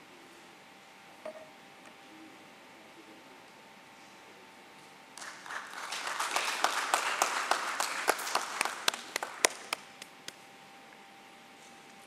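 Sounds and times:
audience applause: 0:05.2 - 0:09.9
scattered single claps: 0:05.2 - 0:10.4.

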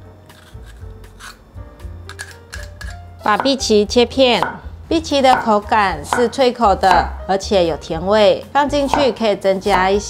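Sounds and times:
soft background music: 0:00.0 - 0:10.0
vegetable peeler scraping skin: 0:00.3 - 0:01.4, 0:02.1 - 0:03.4.

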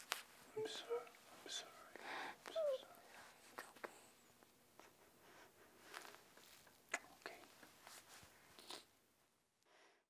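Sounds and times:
woman whimpering: 0:00.6 - 0:01.1, 0:02.4 - 0:03.0.

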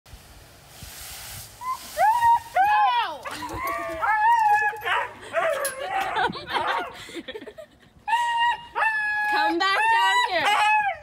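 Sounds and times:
hose spray hissing: 0:00.1 - 0:02.6
dog yowling and howling: 0:01.6 - 0:06.9, 0:08.1 - 0:11.0.

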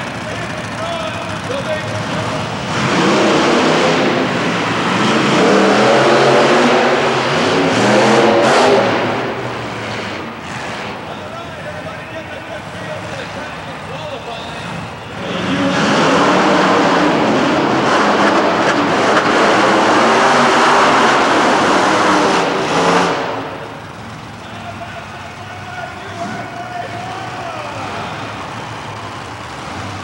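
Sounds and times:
monster truck engines at full throttle: 0:00.0 - 0:30.0.

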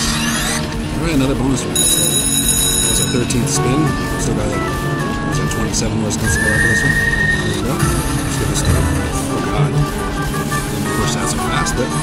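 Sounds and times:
slot machine spin sweeps: 0:01.6 - 0:12.0
casino chatter: 0:01.7 - 0:04.4
ringing chime: 0:01.8 - 0:03.4
beeping tones: 0:01.8 - 0:12.0.

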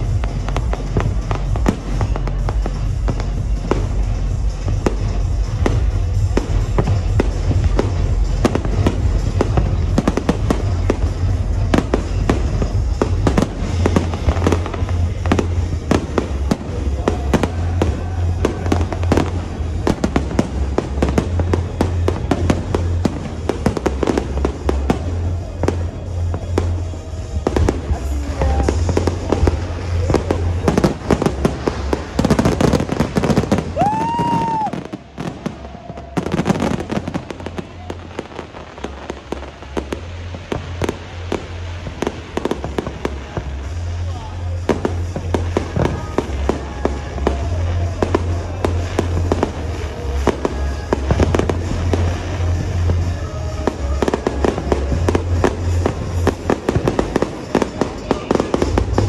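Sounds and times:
fireworks bangs and crackles: 0:00.0 - 0:59.0
music with steady bass: 0:00.0 - 0:59.0
firework whistle: 0:00.2 - 0:59.0.

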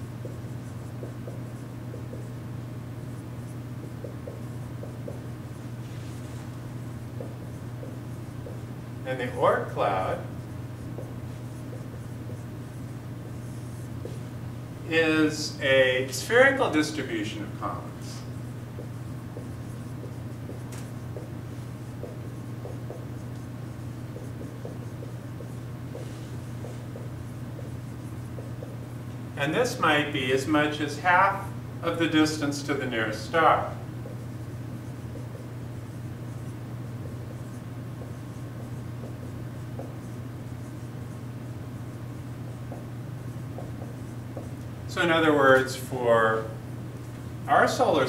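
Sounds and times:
marker squeaking on whiteboard: 0:00.0 - 0:14.2, 0:16.1 - 0:29.1, 0:32.2 - 0:44.7
steady low hum: 0:00.0 - 0:48.0.

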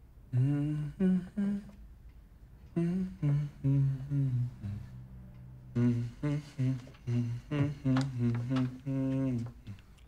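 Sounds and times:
man humming a slow tune: 0:00.3 - 0:01.8, 0:02.7 - 0:10.0.

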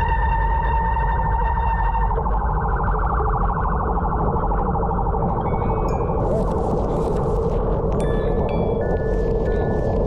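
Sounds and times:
wind noise: 0:03.6 - 0:10.0.

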